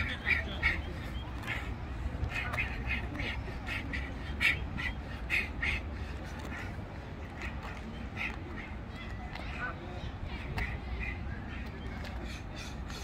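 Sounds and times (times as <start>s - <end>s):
ducks quacking: 0.0s - 9.8s.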